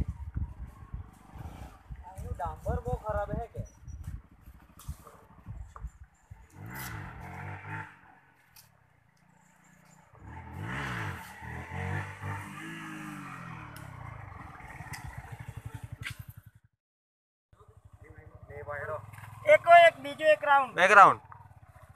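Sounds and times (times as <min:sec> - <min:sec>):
motorcycle engine revving: 0:00.0 - 0:16.8, 0:17.6 - 0:21.9.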